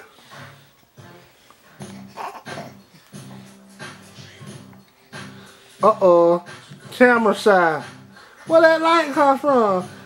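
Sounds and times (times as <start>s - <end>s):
background music: 0.0s - 10.0s
baby cooing and grunting: 1.8s - 3.5s.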